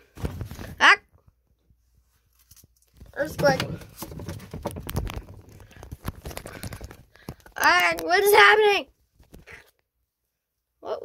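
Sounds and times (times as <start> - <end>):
plastic bottles rattling together: 3.0 - 8.4.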